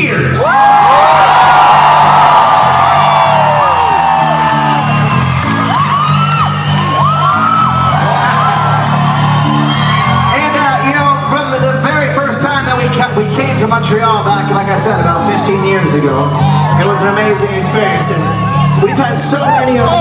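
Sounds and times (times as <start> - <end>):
crowd whooping and yelling: 0.0 - 12.6, 14.8 - 20.0
rock band playing loudly: 2.1 - 20.0.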